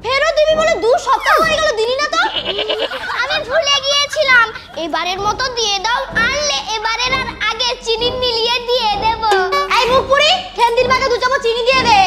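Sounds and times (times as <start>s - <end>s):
woman talking emotionally: 0.8s - 5.0s.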